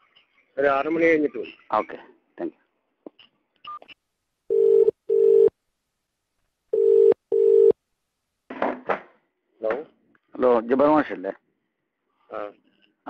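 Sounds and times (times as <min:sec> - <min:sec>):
telephone ringback tone: 0:04.5 - 0:05.5, 0:06.7 - 0:07.8.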